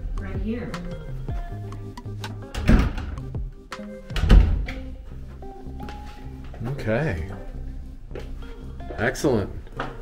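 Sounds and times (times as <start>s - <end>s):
background music: 0.0s - 10.0s
closet door thumps: 2.5s - 3.4s, 4.1s - 4.9s.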